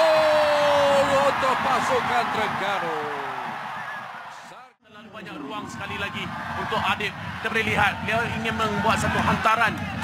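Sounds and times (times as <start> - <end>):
stadium crowd cheering: 0.0 - 10.0
man commentating: 0.1 - 3.6.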